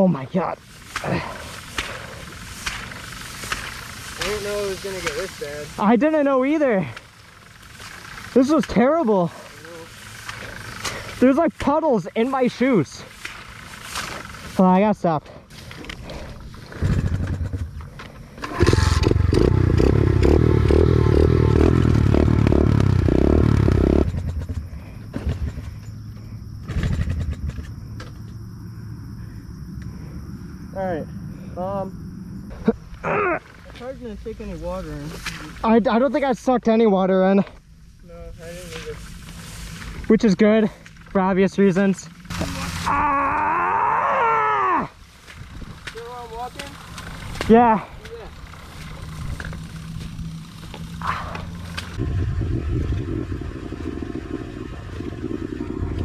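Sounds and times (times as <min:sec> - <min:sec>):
motorbike engine starting and running: 0:00.9 - 0:11.3, 0:15.6 - 0:28.3, 0:45.2 - 0:56.0
man groaning: 0:33.0 - 0:33.5, 0:42.9 - 0:44.9.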